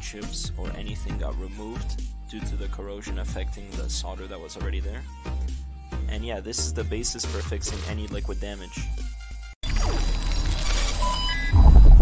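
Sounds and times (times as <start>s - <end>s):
short electronic beeps: 10.0s - 11.9s
deep pulsing bass boom: 11.5s - 12.0s.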